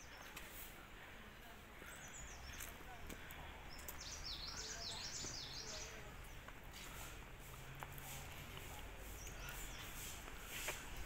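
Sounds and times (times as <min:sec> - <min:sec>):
faint outdoor background noise: 0:00.0 - 0:11.0
small bird singing: 0:01.8 - 0:07.1, 0:09.0 - 0:10.6.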